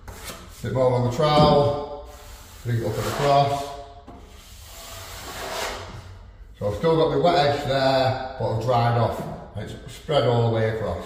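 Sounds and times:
trowel scraping wet plaster: 2.1 - 3.8, 4.4 - 6.0.

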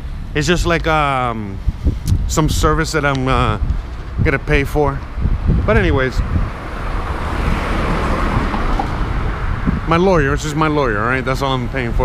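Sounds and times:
car passing: 0.0 - 12.0.

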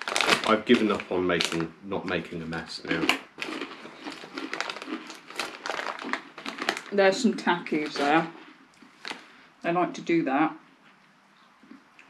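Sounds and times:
snack bag crinkling: 0.0 - 9.3.

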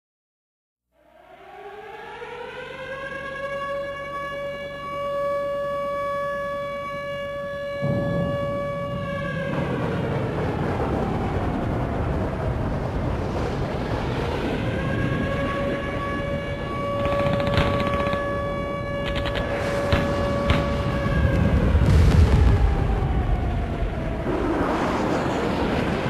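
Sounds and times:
air raid siren: 0.9 - 26.0
loud rushing noise: 19.1 - 26.0.

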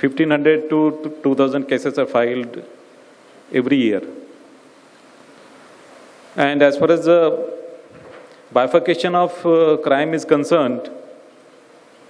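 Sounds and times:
man speaking: 0.0 - 2.8, 3.5 - 4.3, 6.4 - 7.8, 8.5 - 11.2
low room tone hiss: 0.0 - 12.0.

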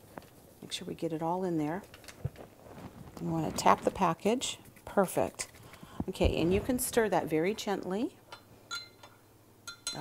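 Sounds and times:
metal spoon clinking glass cup: 8.7 - 10.0.

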